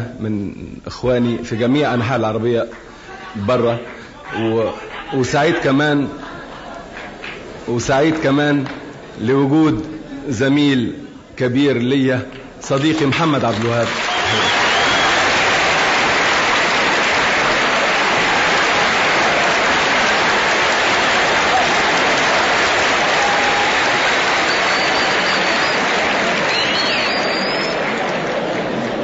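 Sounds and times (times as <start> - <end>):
audience applauding: 2.7 - 5.8, 6.7 - 8.8, 12.8 - 29.0.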